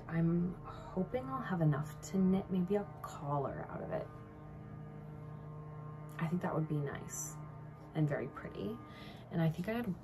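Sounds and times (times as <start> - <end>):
steady low hum: 0.0 - 10.0
faint held tones: 0.1 - 10.0.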